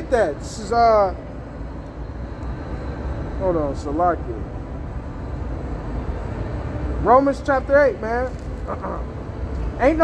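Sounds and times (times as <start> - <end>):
low rumble of street traffic: 0.0 - 10.0.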